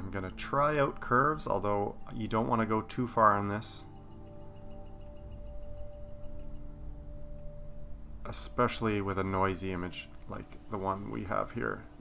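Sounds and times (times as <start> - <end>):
held mid-pitched hum: 1.6 - 12.0
low rumble: 3.8 - 11.2.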